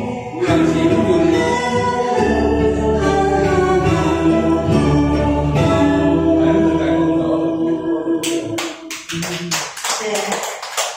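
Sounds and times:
karaoke backing music: 0.0 - 8.9
people clapping: 8.2 - 10.9.

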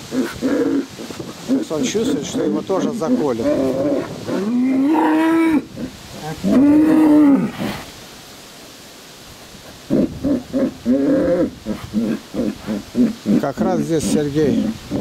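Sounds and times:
bulls bellowing: 0.0 - 7.8, 9.9 - 15.0.

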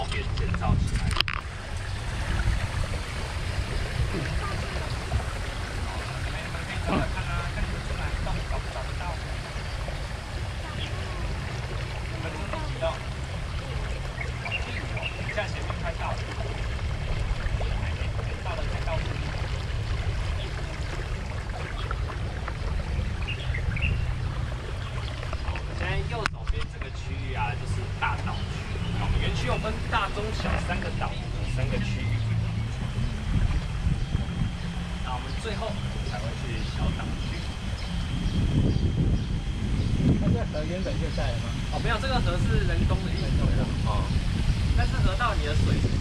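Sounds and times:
water splashing along boat hull: 0.0 - 38.4
steady low rumble: 0.0 - 46.0.

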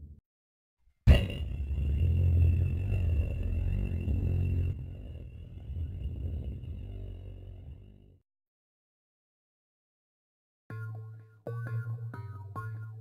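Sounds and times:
cartoon explosion bang: 1.1 - 1.5
deep rumble: 1.1 - 8.2.

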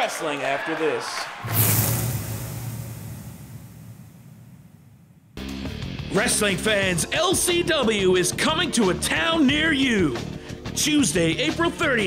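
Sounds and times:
whoosh: 1.4 - 5.4
deep low rumble: 1.5 - 5.1.

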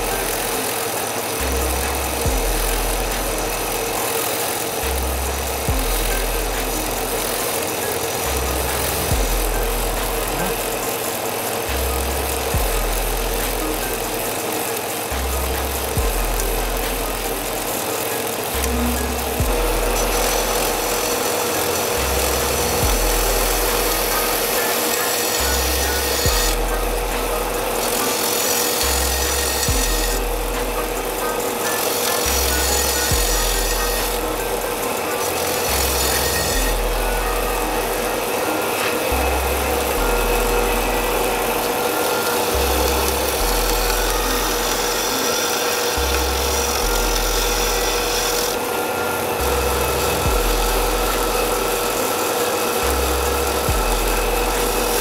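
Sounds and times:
background music: 0.0 - 55.0
belt grinder grinding steel: 0.0 - 55.0.

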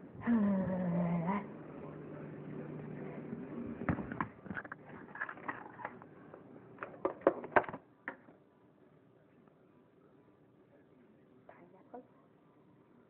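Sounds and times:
kitchen items knocking and clicking: 6.8 - 8.3.

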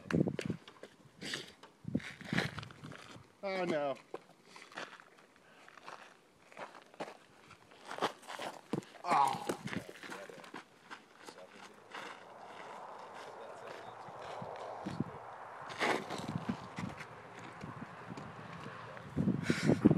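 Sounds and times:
footsteps on gravel: 2.0 - 19.1
wordless shouts: 9.0 - 9.6.

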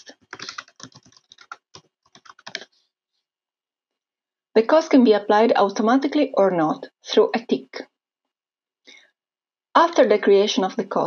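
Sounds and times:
computer keyboard typing: 0.0 - 2.6.

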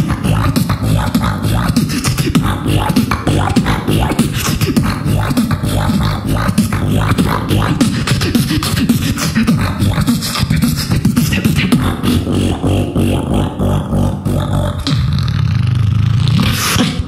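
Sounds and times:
person beatboxing: 0.0 - 17.0.

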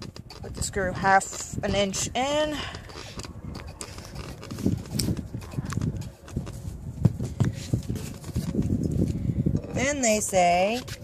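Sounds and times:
handling noise: 0.0 - 11.0.

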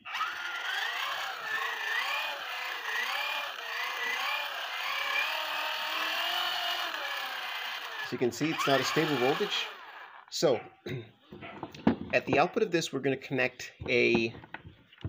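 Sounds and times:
gears whining: 0.0 - 10.5.

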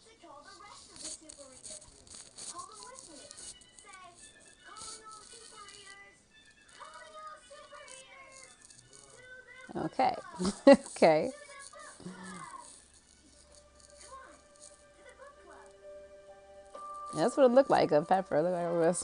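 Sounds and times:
faint talking: 6.8 - 12.7.

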